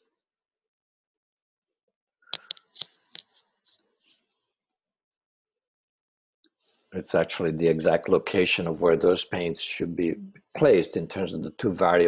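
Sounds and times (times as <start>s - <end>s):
computer mouse clicking: 2.4s - 3.4s.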